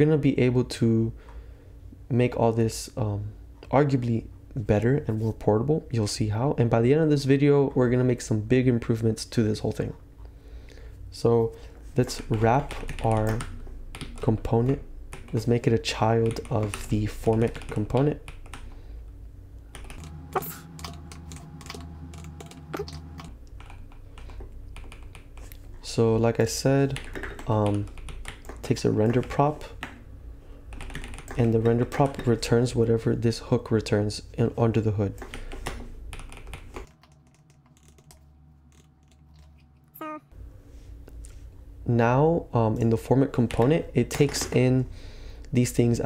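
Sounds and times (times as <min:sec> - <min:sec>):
computer keyboard typing: 0:12.2 - 0:15.6, 0:16.2 - 0:18.7, 0:19.7 - 0:25.6, 0:26.9 - 0:29.9, 0:30.7 - 0:32.4, 0:35.2 - 0:39.6.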